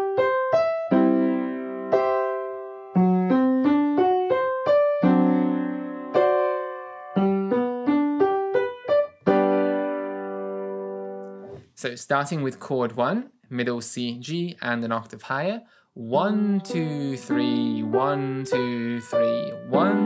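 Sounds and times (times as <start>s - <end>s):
piano playing chords: 0.0s - 11.5s, 16.2s - 20.0s.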